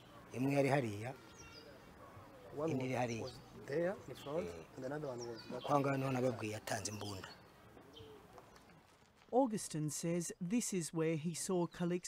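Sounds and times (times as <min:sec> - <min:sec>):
dove cooing: 0:07.8 - 0:08.4.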